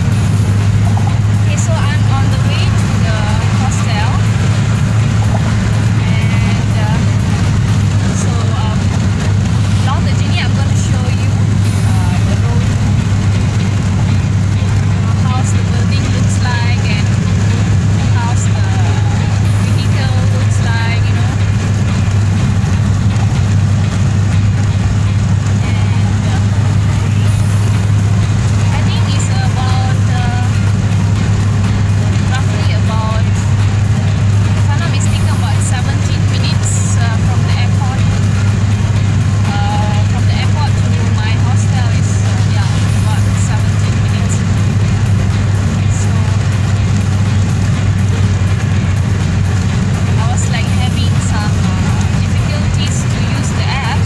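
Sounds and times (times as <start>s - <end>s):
car road and engine rumble: 0.0s - 54.0s
faint voices: 0.0s - 54.0s.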